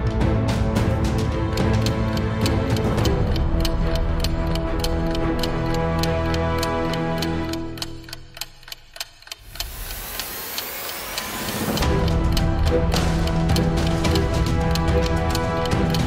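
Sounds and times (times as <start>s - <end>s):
background music: 0.0s - 16.0s
fast ticking beat: 0.0s - 16.0s.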